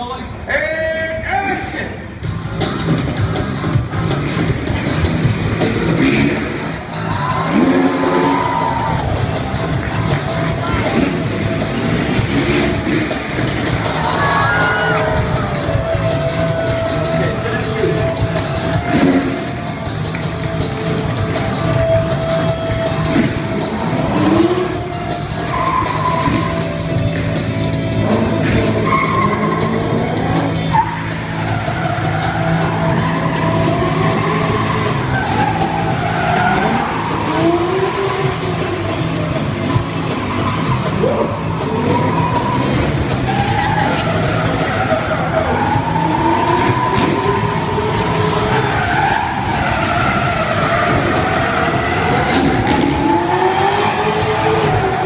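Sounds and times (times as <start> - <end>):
music: 0.0 - 55.0
engines revving: 1.6 - 55.0
tyres squealing: 4.2 - 55.0.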